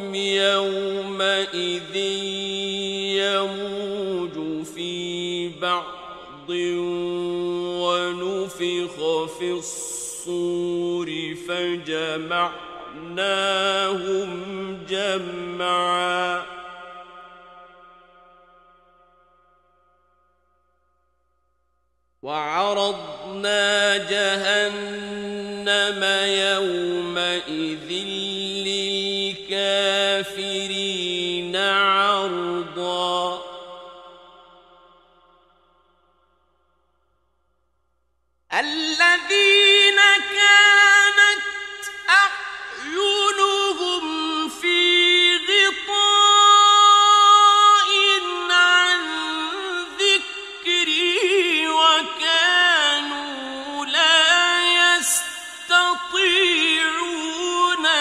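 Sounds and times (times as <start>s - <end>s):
man reciting melodically: 0.0s - 17.3s, 22.2s - 34.4s, 38.5s - 58.0s.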